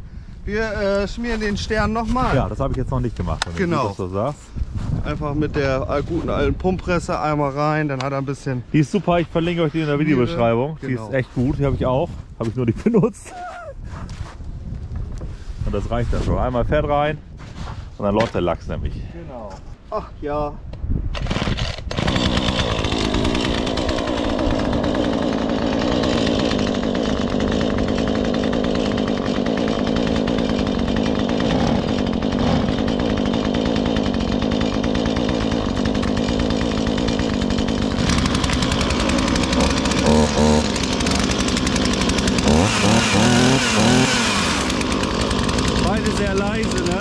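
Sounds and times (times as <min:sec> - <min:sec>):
chainsaw running: 0:03.4 - 0:04.1, 0:08.8 - 0:10.6, 0:21.2 - 0:47.0.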